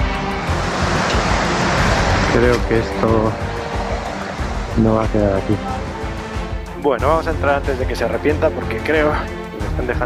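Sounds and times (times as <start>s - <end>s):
background music: 0.0s - 10.0s
wind rushing on microphone: 0.4s - 6.4s.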